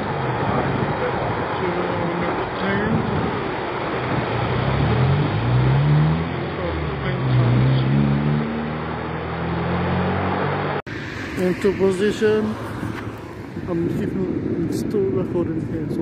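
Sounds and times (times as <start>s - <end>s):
steady roar: 2.3s - 14.6s
engine rising in pitch: 4.3s - 14.5s.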